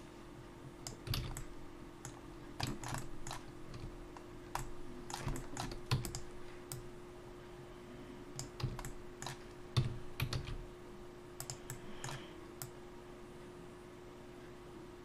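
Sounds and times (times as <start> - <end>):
faint steady hum: 0.0 - 15.0
keyboard and mouse clicking: 0.8 - 6.9, 8.4 - 10.6, 11.4 - 12.8.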